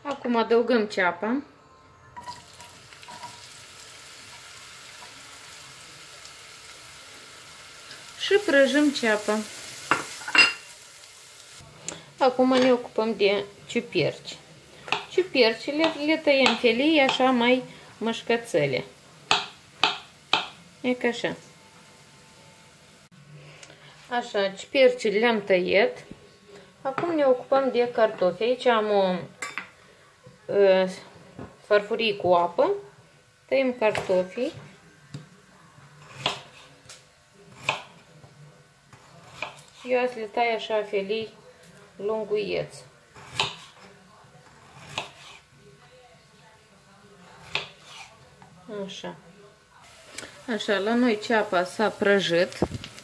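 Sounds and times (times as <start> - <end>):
onion sizzling in oil: 2.2 - 23.1, 49.8 - 53.0
knife slicing potato: 36.0 - 36.8, 37.5 - 38.0, 38.9 - 40.1, 43.2 - 43.9, 44.6 - 45.5, 47.4 - 48.2
spatula scraping pot: 44.5 - 45.5, 47.6 - 48.2.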